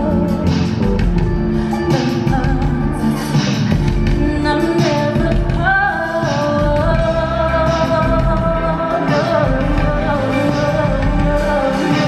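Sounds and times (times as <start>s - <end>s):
deep bass line: 0.0s - 5.9s, 6.5s - 12.0s
high lead voice singing: 0.0s - 12.0s.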